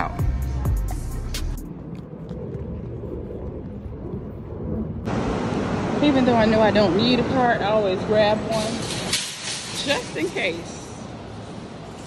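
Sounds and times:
low background rumble: 0.0s - 8.3s.

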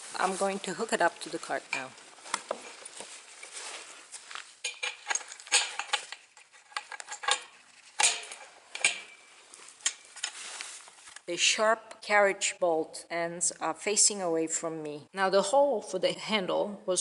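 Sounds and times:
metallic clinks and knocks: 4.6s - 10.4s.

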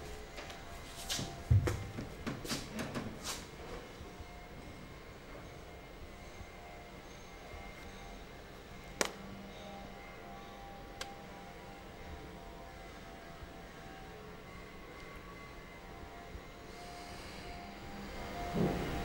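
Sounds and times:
soft ambient music: 0.0s - 19.0s.

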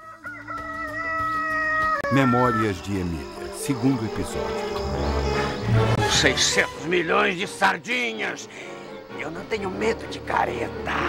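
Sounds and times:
rooster crowing: 0.0s - 2.8s.

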